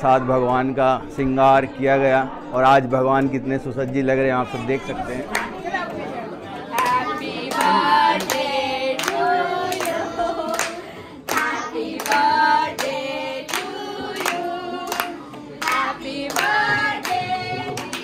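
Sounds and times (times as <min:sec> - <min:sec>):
group singing devotional song: 0:06.4 - 0:18.0
hand claps: 0:06.7 - 0:18.0.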